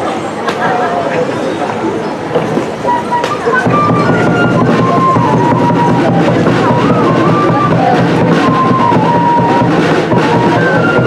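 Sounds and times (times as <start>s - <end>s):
crowd chatter: 0.0s - 11.0s
live dance music: 2.8s - 11.0s
steady drum beat: 3.4s - 11.0s.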